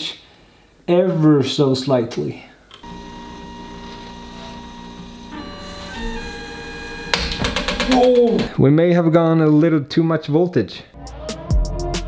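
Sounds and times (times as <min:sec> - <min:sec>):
stepper motors whining: 0:02.8 - 0:08.5.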